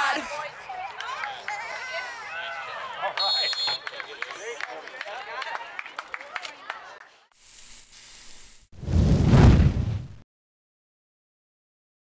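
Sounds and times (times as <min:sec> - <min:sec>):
spectators chattering and calling out: 0:00.0 - 0:07.3
referee's whistle blast: 0:03.2 - 0:03.8.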